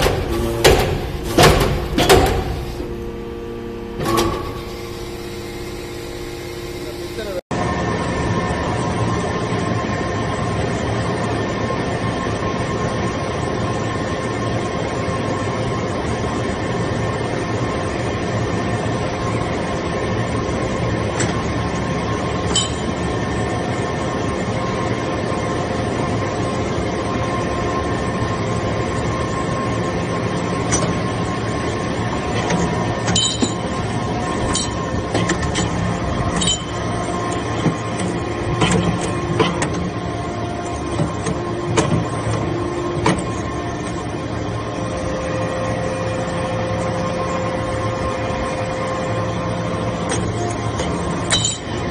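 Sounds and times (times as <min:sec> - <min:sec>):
hydraulic press motor hum: 0:00.0 - 0:07.4, 0:28.8 - 0:51.9.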